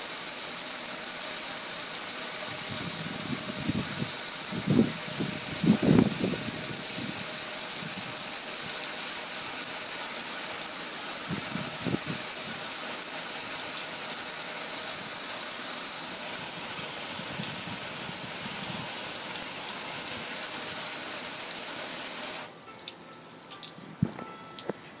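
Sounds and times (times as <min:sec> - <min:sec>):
high-pressure water jet hissing: 0:00.0 - 0:22.5.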